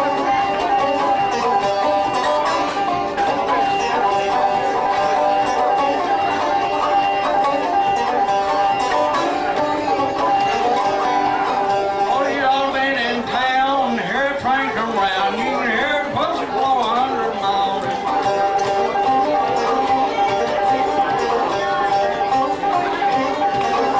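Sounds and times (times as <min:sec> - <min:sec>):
resonator banjo picking: 0:00.0 - 0:23.9.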